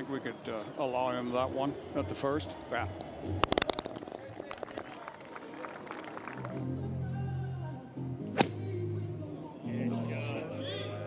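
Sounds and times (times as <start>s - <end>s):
background music: 6.2s - 11.0s
golf club striking ball: 8.4s - 8.6s.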